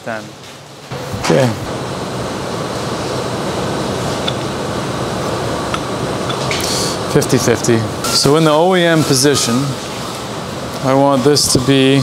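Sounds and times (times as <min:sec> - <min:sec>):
steady rushing background noise: 0:00.0 - 0:12.0.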